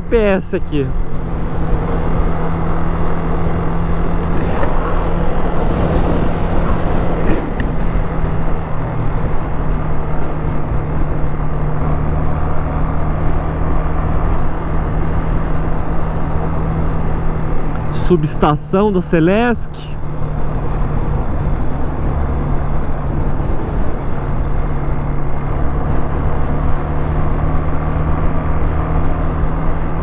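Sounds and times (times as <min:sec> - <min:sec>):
road and wind noise: 0:00.0 - 0:30.0.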